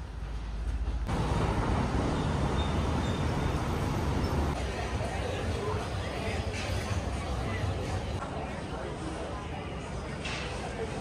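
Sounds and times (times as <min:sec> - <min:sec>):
passing traffic: 0:00.0 - 0:04.9.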